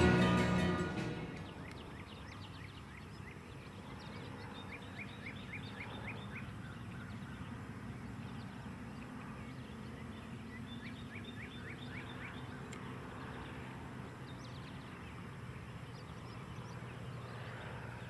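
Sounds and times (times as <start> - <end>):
bird chirping: 0.0 - 18.0
distant light aircraft engine: 0.0 - 18.0.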